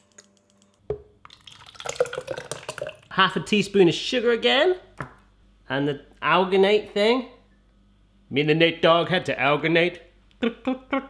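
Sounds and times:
thick liquid pouring and plopping: 0:01.2 - 0:03.1.

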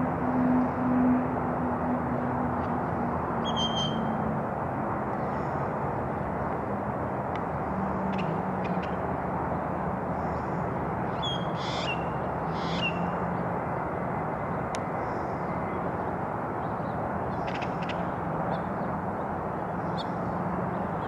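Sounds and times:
outdoor background noise: 0:00.0 - 0:21.0
bird calling: 0:03.4 - 0:04.1, 0:11.2 - 0:12.0.

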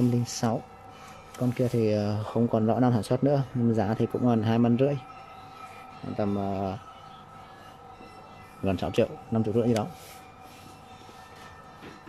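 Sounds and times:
faint constant tones: 0:00.0 - 0:12.0
low background hum: 0:00.0 - 0:12.0.

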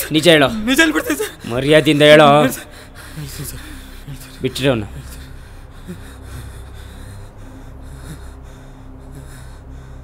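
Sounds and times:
man straining vocally: 0:00.0 - 0:05.1
steady low hum: 0:00.0 - 0:10.0.

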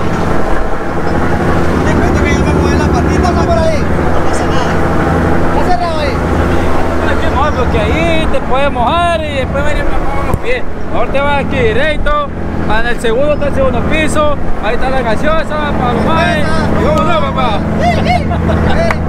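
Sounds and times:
ferry engine running: 0:00.0 - 0:19.0
people's voices: 0:00.0 - 0:19.0.

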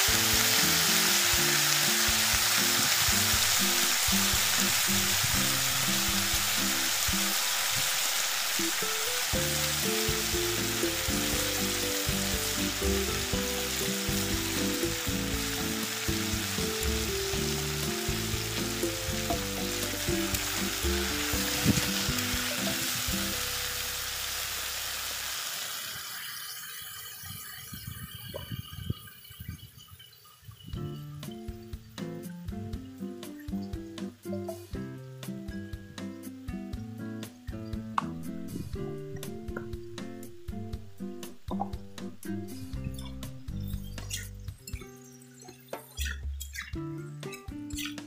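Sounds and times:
background music: 0:00.0 - 0:07.8, 0:08.5 - 0:24.4, 0:30.8 - 0:48.0
food sizzling in hot oil: 0:00.0 - 0:34.8.

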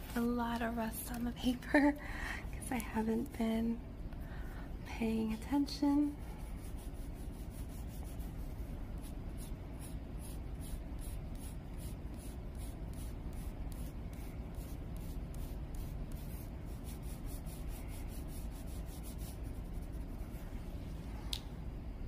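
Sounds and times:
pencil scratching on paper: 0:06.3 - 0:20.3.

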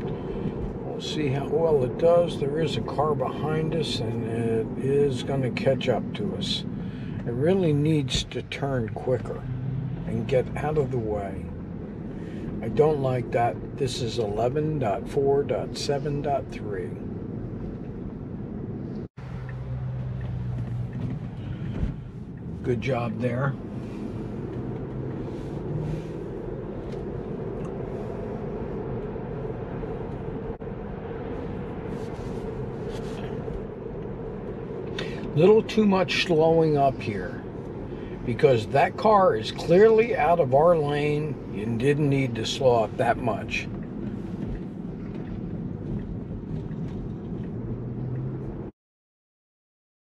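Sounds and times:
low steady hum: 0:00.0 - 0:48.7
road and tyre noise in car cabin: 0:00.0 - 0:48.7.

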